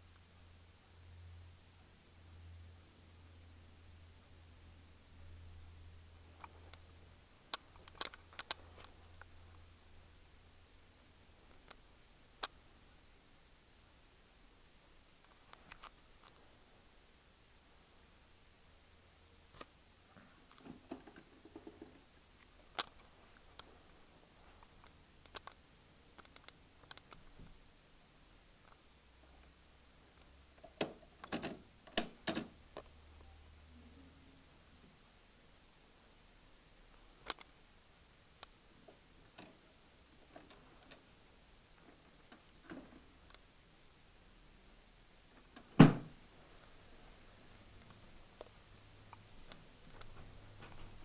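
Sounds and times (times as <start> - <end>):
faint low hum: 0.0 - 51.0.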